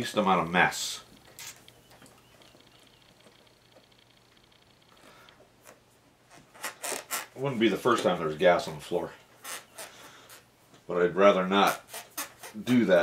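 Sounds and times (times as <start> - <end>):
thin high squeak: 1.2 - 2.6, 9.4 - 10.5.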